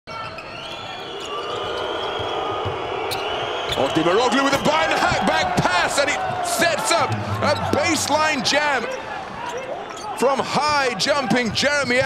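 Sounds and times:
arena crowd noise: 0.1s - 12.0s.

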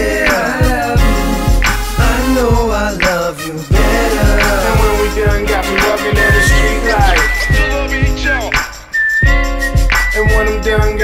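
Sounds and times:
hip-hop song with rapping: 0.0s - 11.0s
high whistle-like melody: 4.8s - 11.0s.

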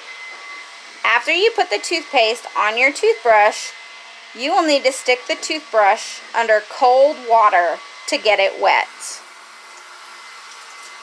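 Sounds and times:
water running into a sink: 9.6s - 11.0s.

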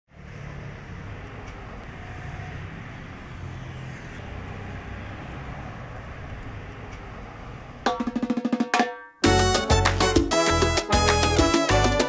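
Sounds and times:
low rumble of passing cars: 0.1s - 7.9s.

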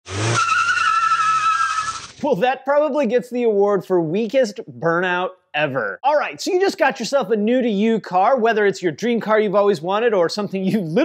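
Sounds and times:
tyre squealing on concrete: 0.0s - 2.2s.

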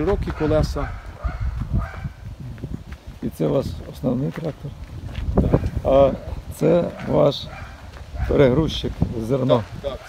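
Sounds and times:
footsteps: 0.0s - 10.0s
wind buffeting microphone: 0.0s - 10.0s.

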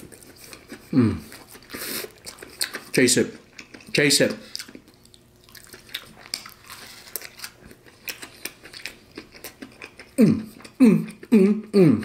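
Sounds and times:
close-up chewing with crunches: 0.0s - 11.4s.

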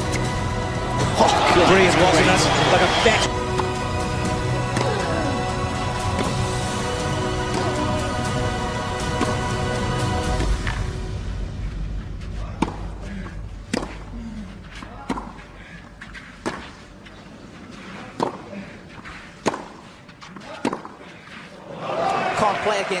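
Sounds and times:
crowd cheering: 0.9s - 3.3s, 21.6s - 23.0s
crowd murmuring: 0.9s - 3.3s
racquet hitting tennis ball: 18.2s - 18.4s, 19.4s - 19.8s, 20.4s - 21.0s.

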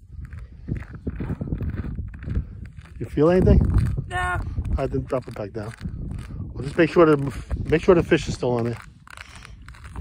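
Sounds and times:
footsteps on snowy ice: 0.0s - 10.0s.

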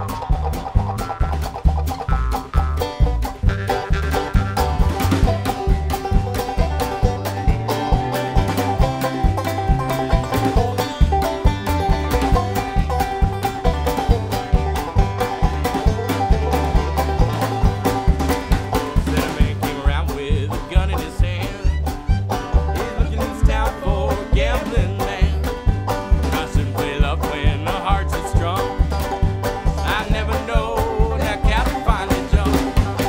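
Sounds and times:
banjo picking: 0.0s - 33.0s
fiddle: 0.0s - 33.0s
harmonica: 0.0s - 33.0s
upright bass: 0.0s - 33.0s.

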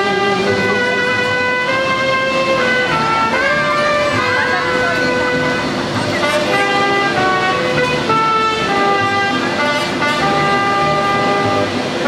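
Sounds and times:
trumpets holding long notes: 0.0s - 12.0s
violins: 0.0s - 12.0s.

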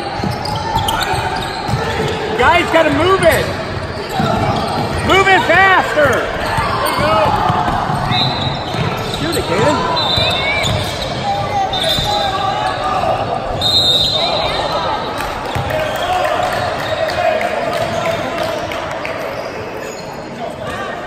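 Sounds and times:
sneaker squeaks: 0.0s - 16.2s, 19.2s - 20.9s
voices shouting: 0.2s - 18.1s.

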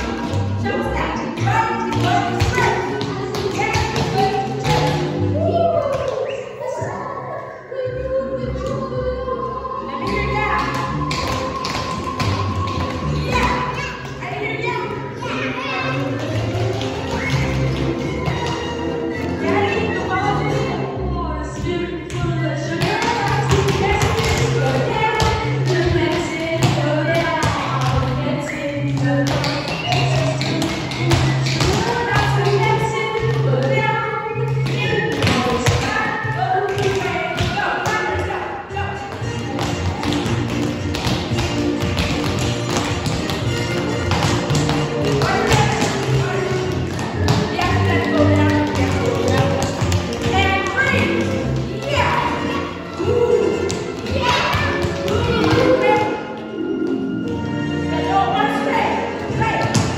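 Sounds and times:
background music: 0.0s - 59.9s
tap shoes on floor: 39.1s - 52.6s, 53.4s - 56.1s.

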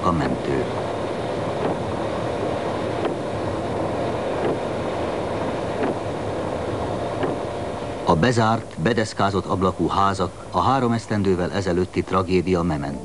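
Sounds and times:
vehicle engine and road rumble: 0.0s - 10.7s.

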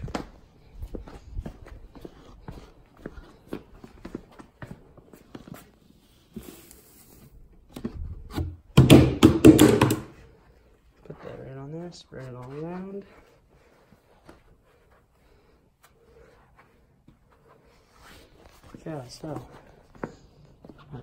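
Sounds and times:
boot scraping on concrete: 0.0s - 8.6s
sawdust scuffed on concrete: 0.1s - 7.4s.

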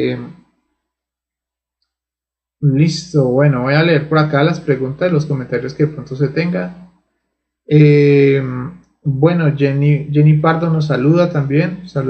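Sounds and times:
man saying eh: 0.0s - 0.3s, 2.6s - 6.7s, 7.7s - 12.0s.

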